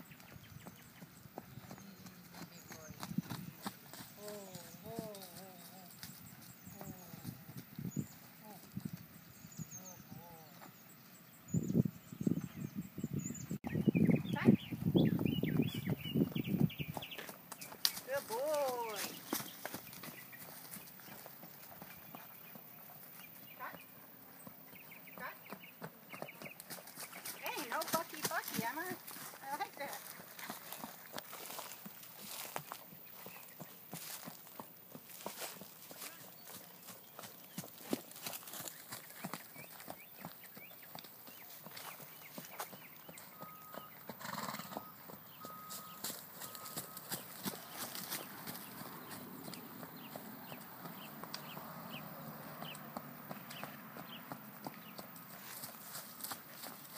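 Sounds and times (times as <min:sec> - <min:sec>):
horse trotting on dirt: 0:00.0 - 0:09.3, 0:14.5 - 0:56.9.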